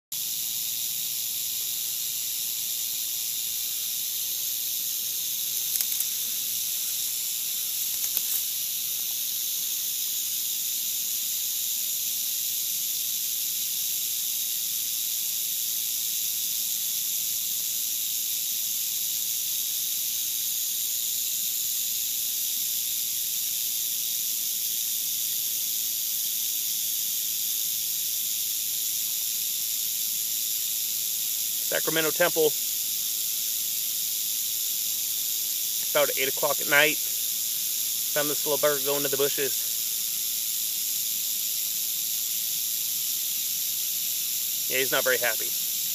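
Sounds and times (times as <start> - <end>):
rattlesnake tail rattle buzzing: 0.1 - 45.9.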